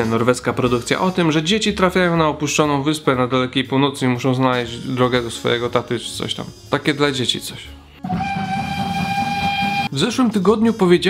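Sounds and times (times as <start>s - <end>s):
steam locomotive whistle: 8.0s - 10.0s.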